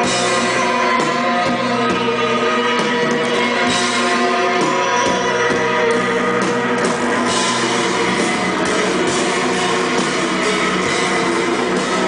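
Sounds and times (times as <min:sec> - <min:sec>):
keyboard and guitar chords: 0:00.0 - 0:12.0
live rock band: 0:00.0 - 0:12.0.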